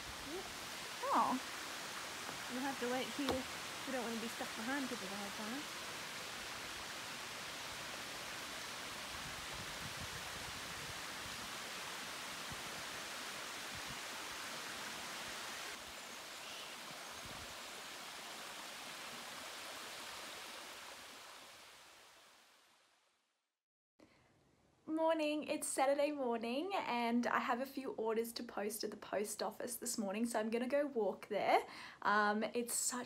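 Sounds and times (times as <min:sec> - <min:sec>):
running water rushing: 0:00.0 - 0:22.6.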